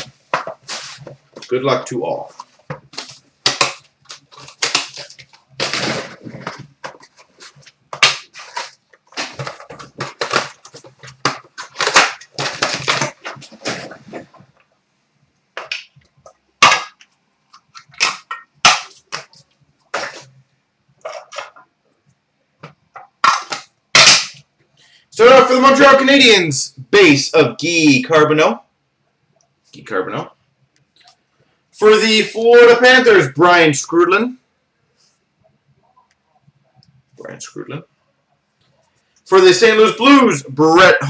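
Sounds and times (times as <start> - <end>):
wrapping snapping and crinkling: 2.2 - 14.7, 15.6 - 20.4.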